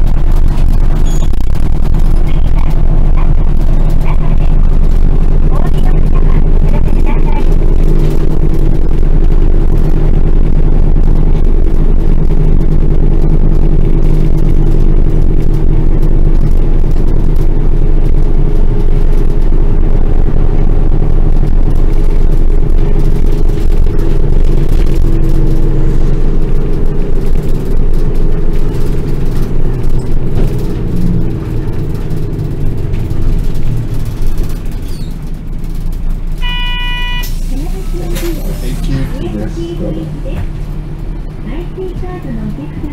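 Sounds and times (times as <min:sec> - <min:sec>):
bus engine droning: 0:00.0 - 0:42.9.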